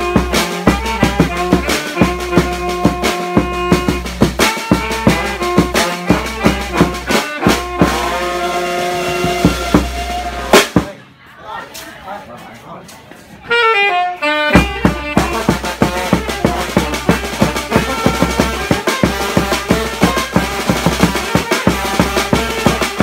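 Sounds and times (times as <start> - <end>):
brass band music: 0.0 - 11.0, 13.4 - 23.0
drum beat: 0.0 - 11.0, 14.5 - 23.0.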